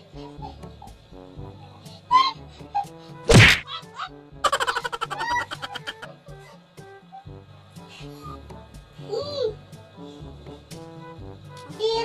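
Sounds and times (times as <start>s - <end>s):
light background music: 0.0s - 12.0s
loud whack: 3.3s - 3.6s.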